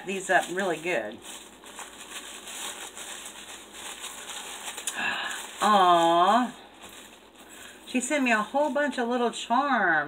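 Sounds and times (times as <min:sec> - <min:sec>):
wrapping crinkling and rustling: 0:00.0 - 0:09.5.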